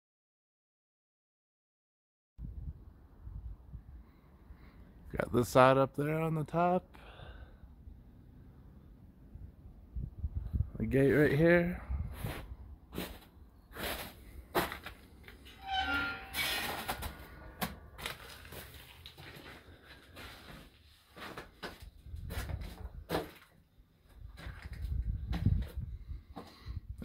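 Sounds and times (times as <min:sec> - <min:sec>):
metal gate hinges squeaking: 0:15.4 - 0:17.6.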